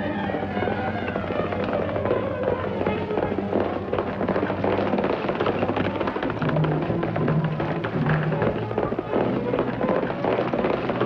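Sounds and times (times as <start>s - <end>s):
background music: 0.0s - 11.0s
horses galloping: 0.0s - 11.0s.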